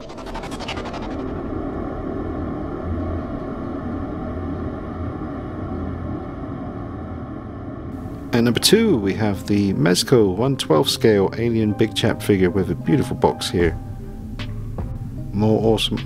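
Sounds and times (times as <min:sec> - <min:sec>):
glitchy crackle: 0:00.0 - 0:01.7
low rumbling drone: 0:00.0 - 0:16.0.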